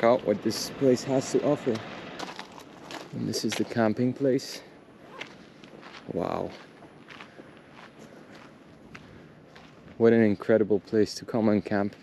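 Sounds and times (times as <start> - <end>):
footsteps on dry grass: 2.2 - 4.0, 5.0 - 10.9.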